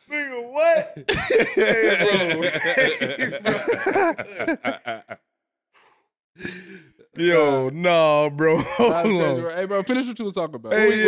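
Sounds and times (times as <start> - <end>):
man laughing: 0.8 - 5.2
man sighing: 5.8 - 7.0.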